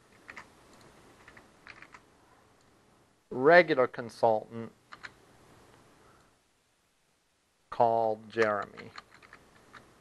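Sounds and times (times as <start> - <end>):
faint keyboard typing: 0.1 - 2.8, 4.9 - 5.2, 8.4 - 9.9.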